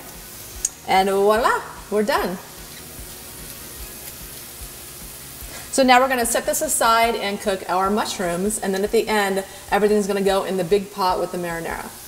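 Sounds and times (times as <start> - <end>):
meat sizzling in a skillet: 0.0 - 12.0.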